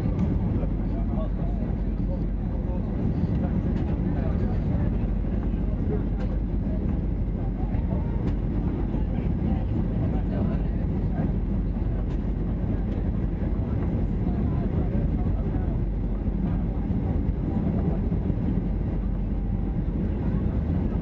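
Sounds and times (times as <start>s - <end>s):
airplane cabin engine rumble: 0.0s - 21.0s.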